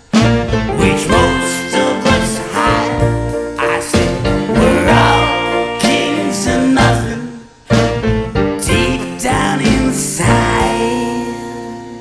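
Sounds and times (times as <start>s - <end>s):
rock band closing chord: 0.0s - 12.0s.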